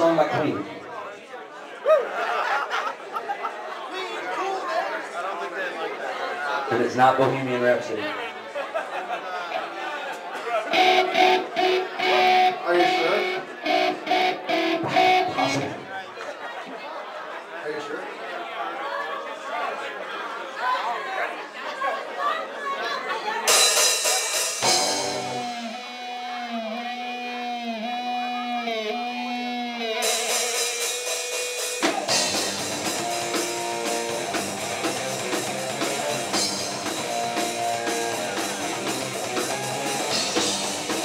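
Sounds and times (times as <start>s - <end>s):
room chatter: 0.0s - 41.0s
electric guitar note picked: 10.7s - 15.9s, 24.6s - 30.2s
held guitar note bending: 10.7s - 15.9s.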